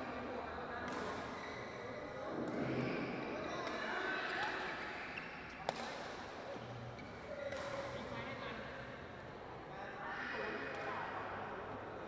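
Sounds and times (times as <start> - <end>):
racket hitting shuttlecock: 7.5 - 8.2.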